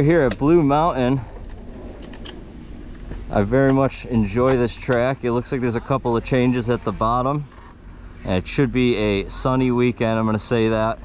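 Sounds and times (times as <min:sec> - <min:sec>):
low rumble: 0:00.0 - 0:09.8
insects buzzing: 0:00.0 - 0:11.0.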